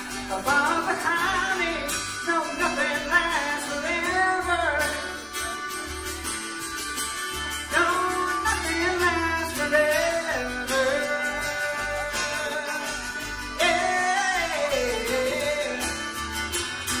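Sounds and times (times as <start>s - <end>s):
acoustic guitar: 0.0s - 17.0s
upright bass: 0.0s - 17.0s.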